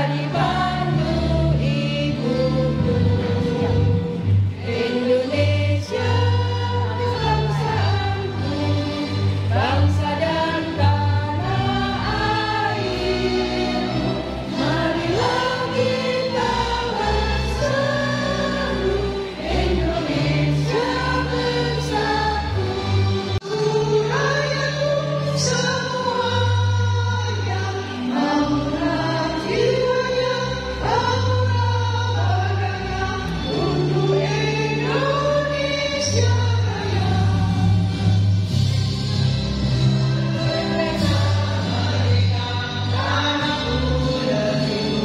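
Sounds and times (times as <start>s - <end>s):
women singing together: 0.0s - 37.8s, 39.9s - 45.0s
instrumental accompaniment with bass: 0.0s - 45.0s.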